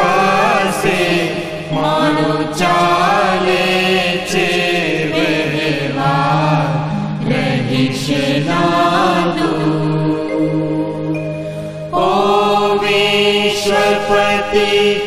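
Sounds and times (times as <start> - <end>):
devotional song singing: 0.0 - 15.0
low drone: 6.0 - 12.6
sharp percussive strikes: 6.5 - 9.3.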